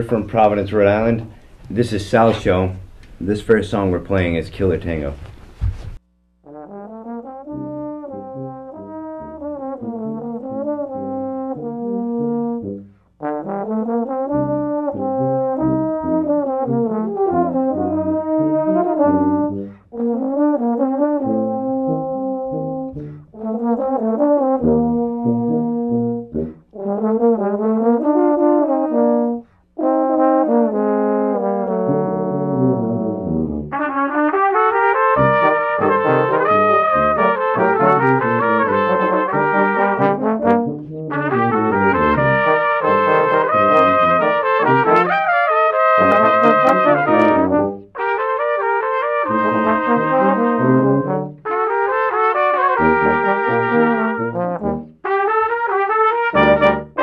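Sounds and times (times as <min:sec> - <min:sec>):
brass quintet playing a tango: 0:06.4 - 0:57.0.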